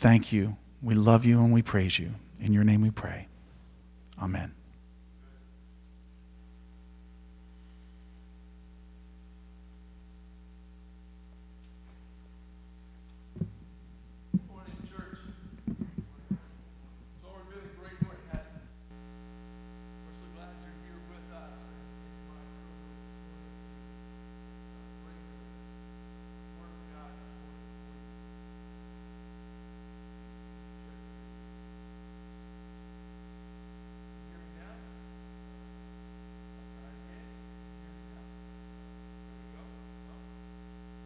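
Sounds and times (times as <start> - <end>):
electrical mains hum: 0.0 - 41.0.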